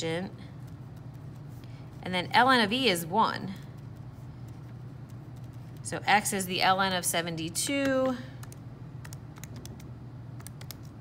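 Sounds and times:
calculator keys clicking: 7.8 - 10.9.

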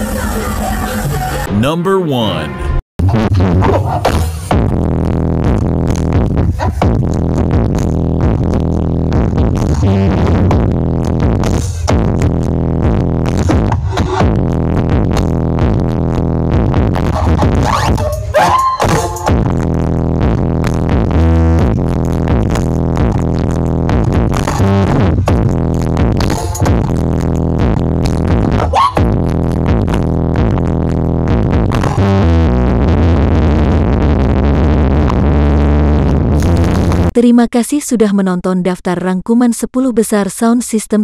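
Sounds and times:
electronic dance music: 0.0 - 4.8, 5.5 - 37.1.

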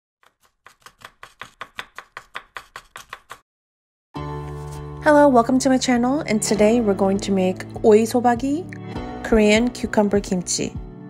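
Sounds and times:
knife chopping on wooden board: 0.2 - 3.4.

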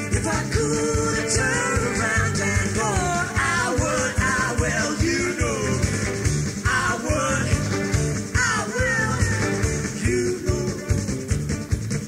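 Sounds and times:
bass: 0.0 - 12.0
drums keeping a beat: 0.0 - 12.0
guitar: 0.0 - 12.0.

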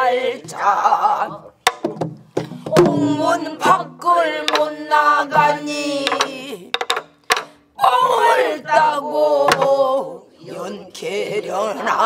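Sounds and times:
group of voices singing: 0.0 - 1.6, 2.5 - 12.0
barrel drum stick strokes: 4.4 - 4.8.

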